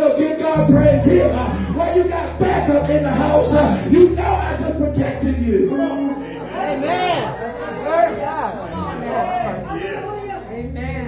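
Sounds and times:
preacher speaking over loudspeakers: 0:00.0 - 0:06.2
chatter of crowd: 0:00.0 - 0:11.0.

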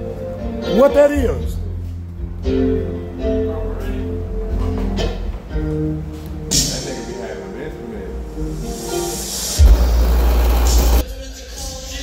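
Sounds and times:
song through car audio system: 0:08.2 - 0:12.0
heavy sub-bass note: 0:09.6 - 0:11.0.

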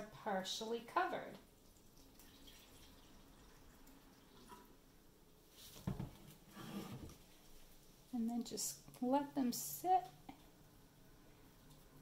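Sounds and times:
water pouring into glass dish: 0:01.6 - 0:04.7.

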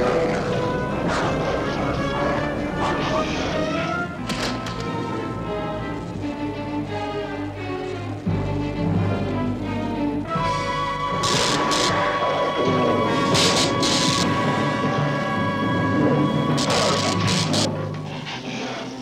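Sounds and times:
dramatic orchestral score: 0:00.0 - 0:19.0.

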